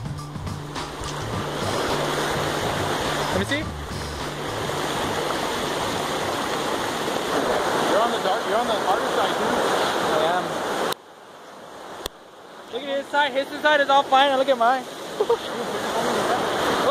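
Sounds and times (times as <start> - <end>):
floodwater rushing down ditch: 0.0 - 16.9.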